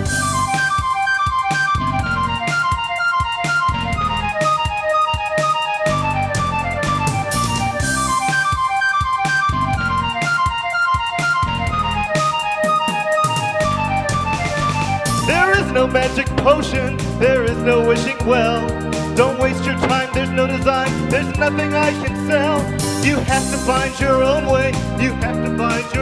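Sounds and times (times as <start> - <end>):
bass: 0.0 - 0.9, 1.8 - 2.6, 3.7 - 4.5, 5.8 - 8.3, 9.5 - 10.2, 11.4 - 12.2, 13.4 - 26.0
steady drum beat: 15.1 - 25.0.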